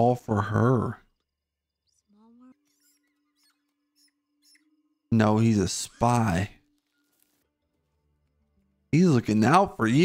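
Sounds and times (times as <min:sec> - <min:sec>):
mouse squeaks: 0:01.1 - 0:07.4.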